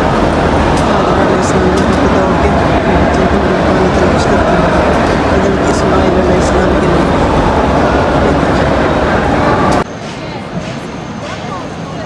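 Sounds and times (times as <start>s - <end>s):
crowd walking and talking in hall: 0.0s - 12.0s
open-air crowd murmur: 0.0s - 12.0s.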